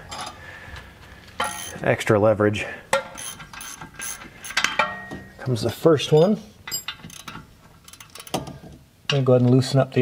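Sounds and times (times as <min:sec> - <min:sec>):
hand tools clinking: 0:02.9 - 0:08.5
ringing metal clink: 0:04.5 - 0:05.4, 0:06.2 - 0:07.0.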